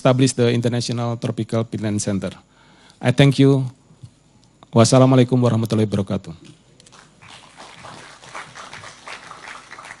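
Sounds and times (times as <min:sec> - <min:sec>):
audience applauding: 0:06.9 - 0:10.0.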